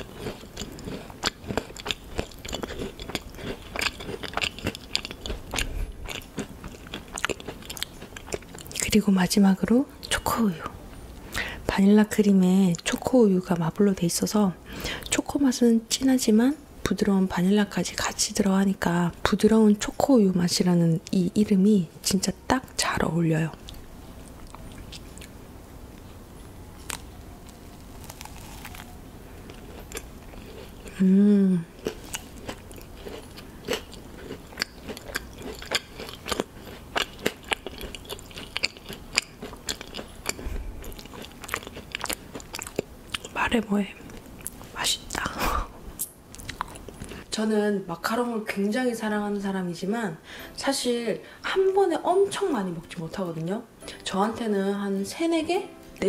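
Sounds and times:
chewing crunches: 0:00.0 - 0:09.0, 0:26.8 - 0:31.0, 0:31.8 - 0:43.4, 0:46.0 - 0:47.3.

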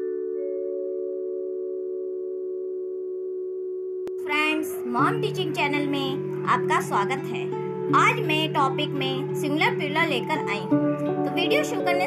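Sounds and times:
ringing chime-like mallet chord: 0:00.0 - 0:03.9
background music: 0:04.1 - 0:12.0
woman's voice: 0:04.2 - 0:12.0.

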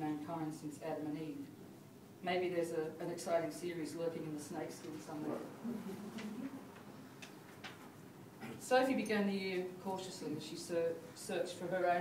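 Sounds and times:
soft low murmur: 0:04.1 - 0:08.8.

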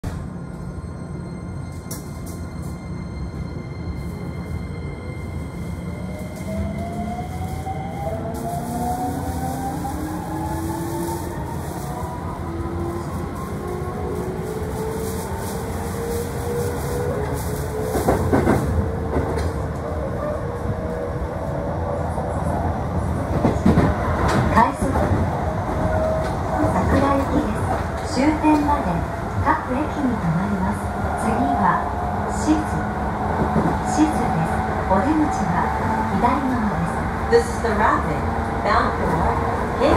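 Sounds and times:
train running rumble: 0:01.5 - 0:21.2, 0:21.8 - 0:39.9.

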